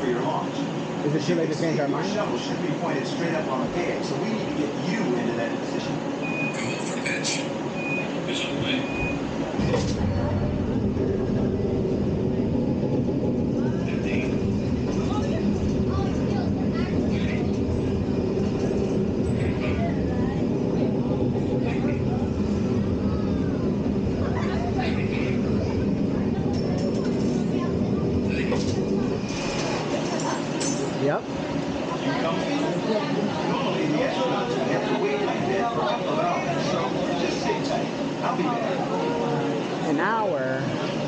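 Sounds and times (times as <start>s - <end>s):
faint voices: 0.0s - 41.0s
low mechanical rumble and hum: 0.0s - 41.0s.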